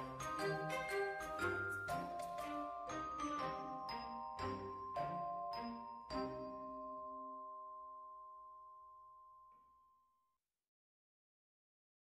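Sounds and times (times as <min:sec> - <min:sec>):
bell-like chime: 0:00.0 - 0:10.2.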